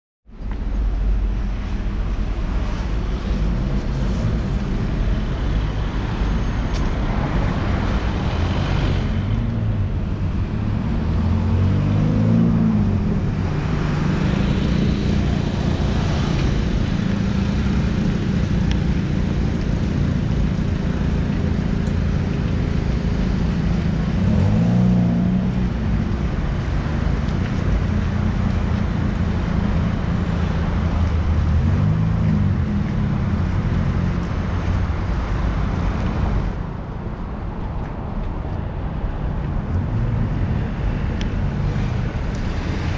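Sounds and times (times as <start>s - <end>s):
cars driving past: 0.4s - 42.9s.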